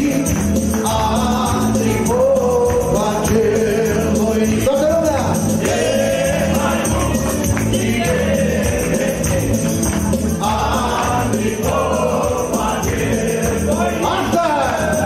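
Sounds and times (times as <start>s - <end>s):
band playing pop music: 0.0s - 15.0s.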